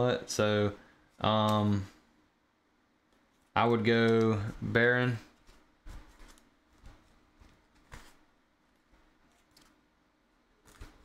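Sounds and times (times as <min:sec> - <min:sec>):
paper cards tapping and rustling: 0:03.2 - 0:09.8, 0:10.6 - 0:11.0.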